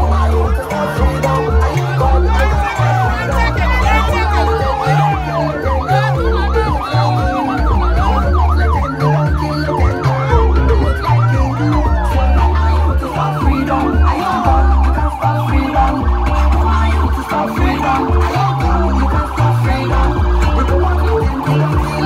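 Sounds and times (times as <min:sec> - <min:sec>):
loud music with heavy bass: 0:00.0 - 0:22.0
motorcycle siren yelping: 0:00.0 - 0:22.0.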